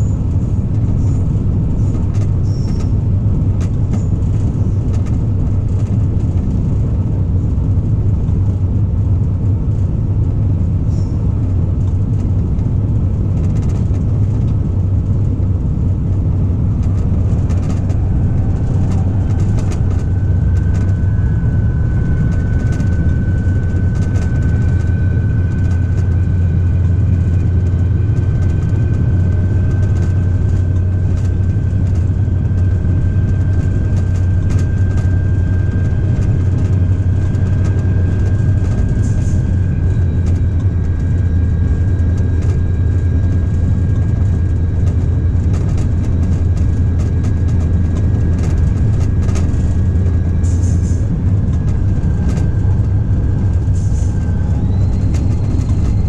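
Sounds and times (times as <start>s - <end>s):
diesel locomotive engine drone: 0.0s - 56.0s
high whine: 0.0s - 56.0s.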